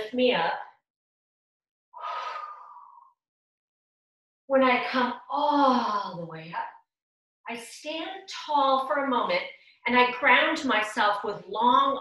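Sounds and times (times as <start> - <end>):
woman exhaling with a hum: 2.0 - 3.2.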